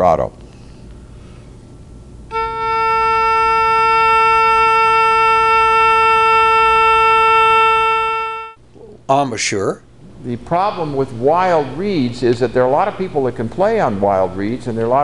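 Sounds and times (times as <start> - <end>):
oboe holding long note: 2.3 - 8.6.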